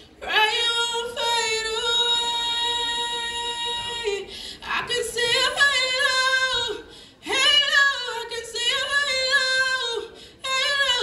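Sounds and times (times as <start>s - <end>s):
woman singing: 0.2s - 11.0s.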